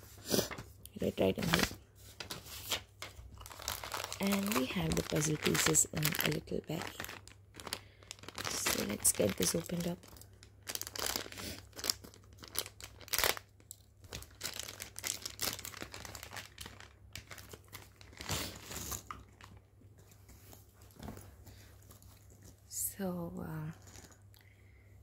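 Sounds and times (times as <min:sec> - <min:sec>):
plastic bag crinkling: 0:01.0 - 0:19.6.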